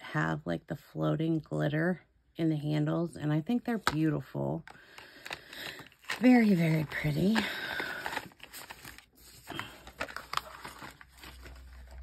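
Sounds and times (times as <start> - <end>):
soft cardboard rustling: 5.8 - 12.0.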